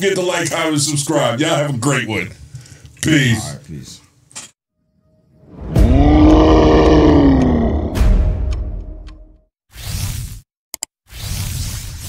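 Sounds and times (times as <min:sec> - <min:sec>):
big animal roar: 0:05.7 - 0:08.4.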